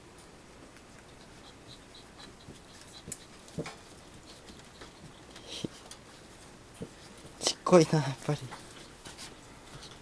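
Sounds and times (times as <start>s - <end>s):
puppies scuffling on a quilt: 0.1s - 10.0s
puppies peeping: 0.7s - 7.0s.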